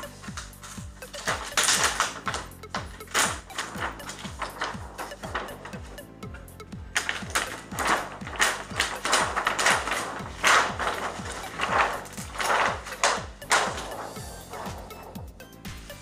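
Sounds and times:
music with electronic beat: 0:00.0 - 0:16.0
plastic sheet crackling and rustling: 0:00.0 - 0:16.0.

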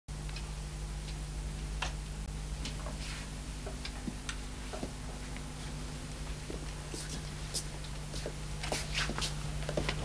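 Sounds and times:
low electrical hum and hiss: 0:00.1 - 0:10.0
faint irregular clicks: 0:00.2 - 0:02.2.

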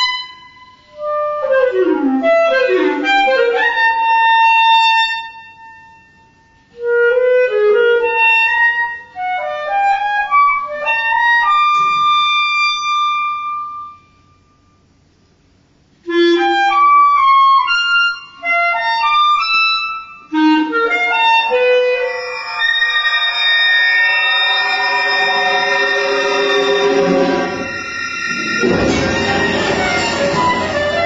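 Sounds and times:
solo clarinet playing: 0:19.8 - 0:23.4.

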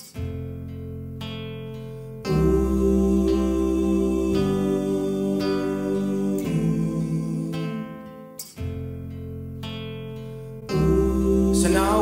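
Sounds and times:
acoustic guitar chords loop: 0:00.0 - 0:12.0.

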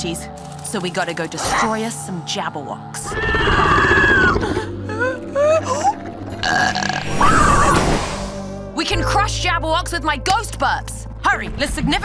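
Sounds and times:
cartoon belching: 0:06.3 - 0:07.4.

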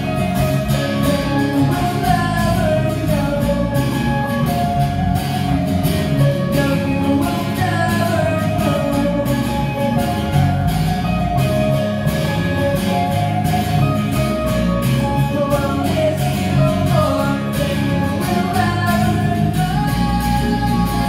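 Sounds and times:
person singing: 0:00.0 - 0:13.1, 0:13.8 - 0:21.0
bass guitar: 0:00.0 - 0:21.0
electric guitar: 0:00.0 - 0:21.0
strummed acoustic guitar: 0:00.0 - 0:21.0.

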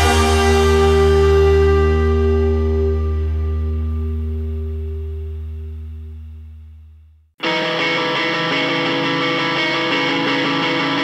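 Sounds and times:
rock song held chord: 0:00.0 - 0:06.4, 0:07.4 - 0:11.0.

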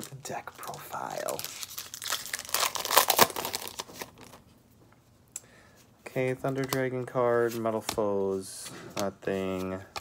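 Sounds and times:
foil wrapper tearing and crinkling: 0:00.9 - 0:04.3.

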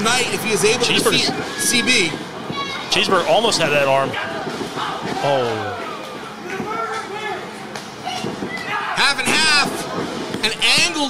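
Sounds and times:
crowd voices in a hall: 0:00.0 - 0:11.0.

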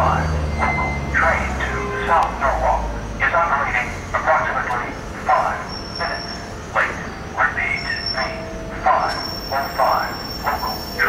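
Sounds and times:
electric train whine: 0:00.0 - 0:11.0
indistinct voices: 0:00.0 - 0:11.0.

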